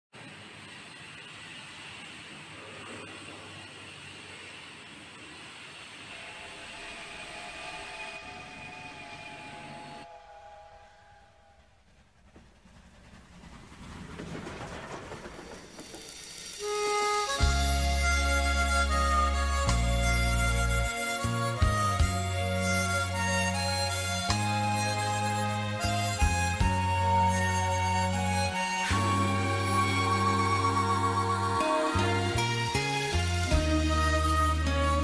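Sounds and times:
train rumbling: 0.2 - 35.0
train horn tone: 6.1 - 11.7
song with strong bass line: 17.4 - 35.0.

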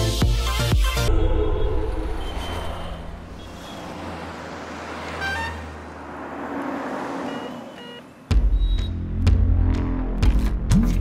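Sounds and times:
road traffic: 0.8 - 10.7
low hum: 1.1 - 3.7
car horn toot: 5.1 - 5.8, 7.3 - 8.8.

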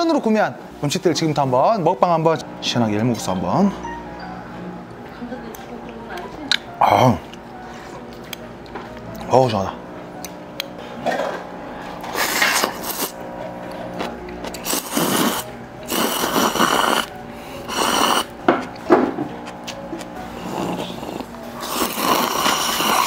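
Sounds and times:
faint background music: 0.0 - 23.0
loud slurping of noodles: 12.1 - 13.2, 14.6 - 18.3, 20.4 - 23.0.

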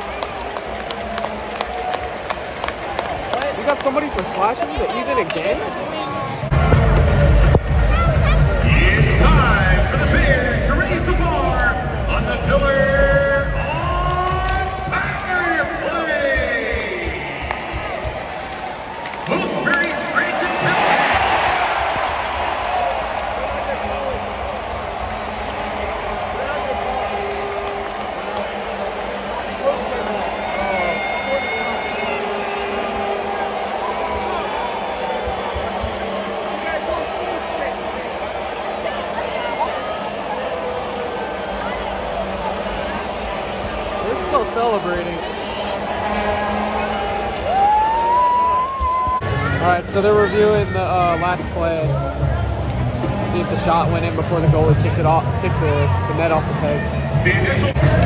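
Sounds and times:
crowd cheering: 0.0 - 58.0
crowd noise: 0.0 - 58.0
music over loudspeakers: 6.5 - 17.4.

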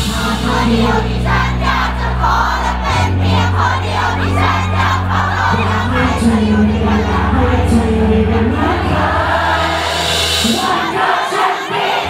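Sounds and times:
live band bass and drums: 0.0 - 11.0
audience singing along: 0.0 - 12.0.

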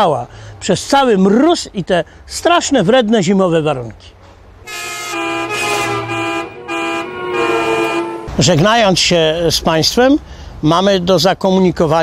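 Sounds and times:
vehicle horn playing a tune: 4.6 - 8.6.

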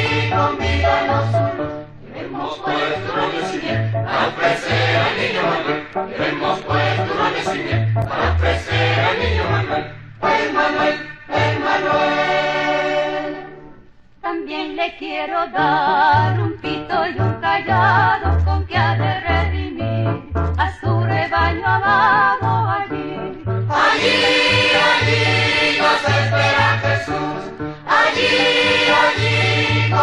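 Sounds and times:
instrumental backing with bass line: 0.0 - 2.0, 2.7 - 14.2, 16.2 - 30.0
choir singing held notes: 0.0 - 13.8, 23.7 - 30.0
choir holding final chord: 23.8 - 30.0.

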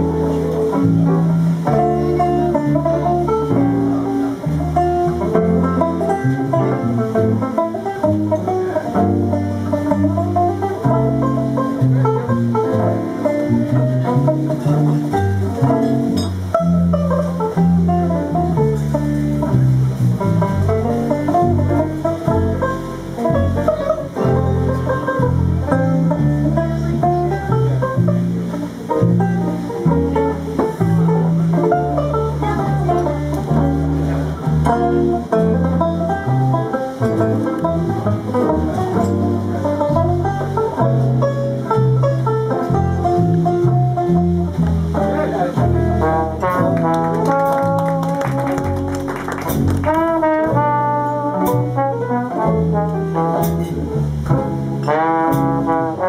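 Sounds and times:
banjo playing slow jazz ballad: 0.0 - 56.0
sustained low notes: 0.0 - 56.0.

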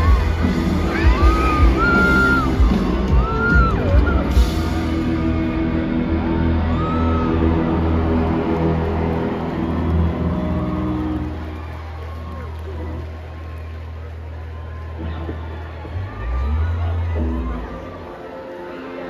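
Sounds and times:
loud rock band playing: 0.0 - 12.1.

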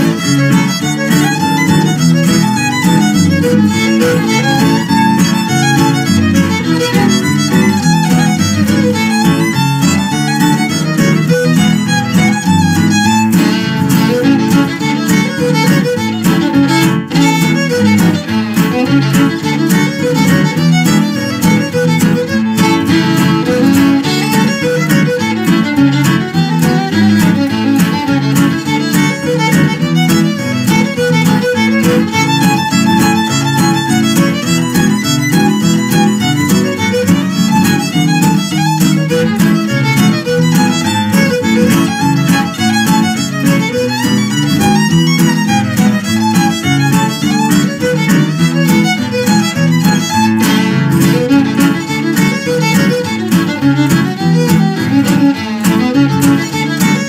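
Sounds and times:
acoustic guitar accompaniment: 0.0 - 57.0
fiddle playing: 0.0 - 57.0.

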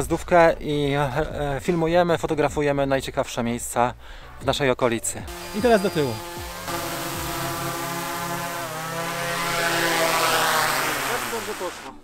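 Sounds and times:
drone propellers whining: 5.3 - 12.0.

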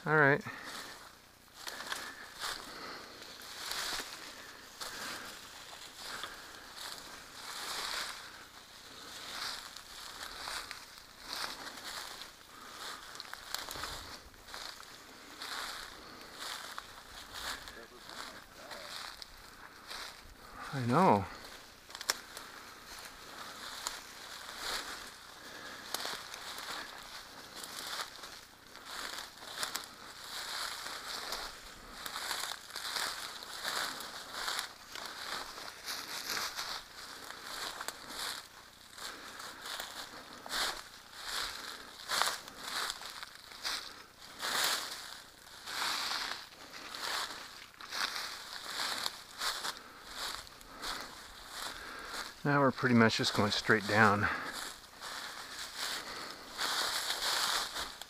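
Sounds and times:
brush rustling: 0.0 - 58.0
footsteps crunching through undergrowth: 0.0 - 58.0.

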